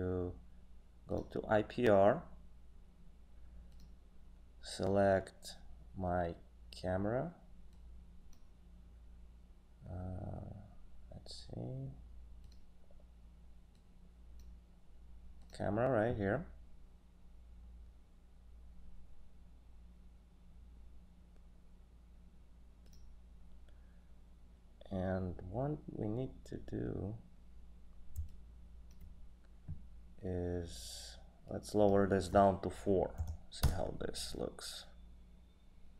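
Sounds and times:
low steady hum: 0.0s - 35.9s
computer mouse clicks: 3.7s - 4.0s, 12.4s - 12.7s, 22.8s - 23.1s, 28.1s - 29.2s.

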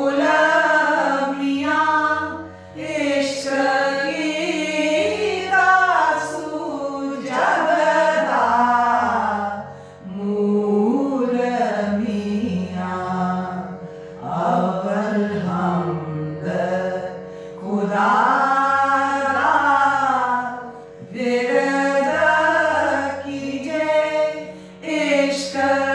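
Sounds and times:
women singing a hymn: 0.0s - 25.9s.

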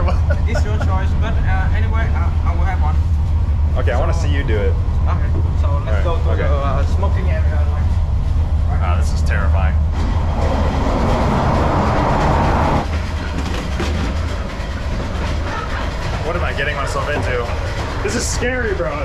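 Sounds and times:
loud rush of track noise: 0.0s - 19.0s
train wheels rumbling on rails: 0.0s - 19.0s.

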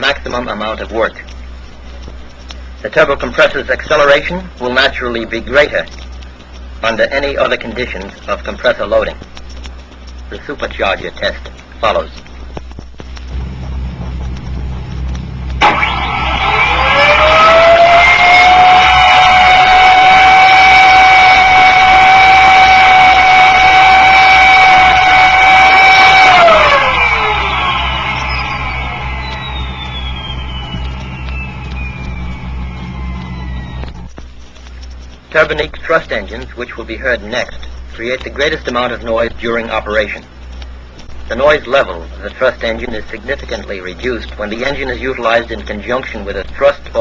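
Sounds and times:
low record hum: 0.0s - 47.0s
sharp ignition crack: 0.0s - 47.0s
supercharger whine: 0.0s - 47.0s.

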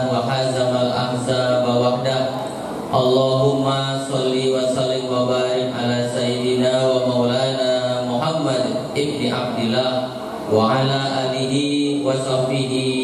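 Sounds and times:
person chanting into microphone: 0.0s - 13.0s.

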